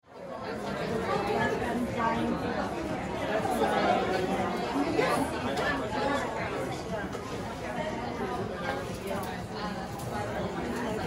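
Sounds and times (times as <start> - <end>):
indistinct chatter of people: 0.0 - 11.0.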